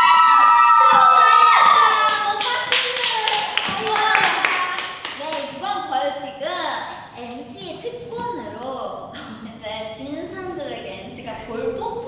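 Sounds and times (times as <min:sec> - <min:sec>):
excited voices: 0:00.0 - 0:05.8
hand clapping: 0:01.4 - 0:05.6.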